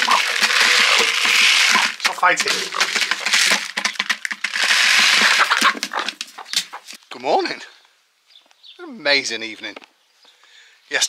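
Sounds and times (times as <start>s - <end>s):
chicken feed pouring and rattling: 0.0s - 6.8s.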